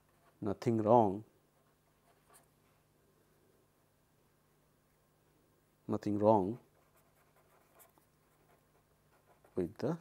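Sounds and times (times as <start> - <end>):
pen scratching on paper: 6.6 - 9.7.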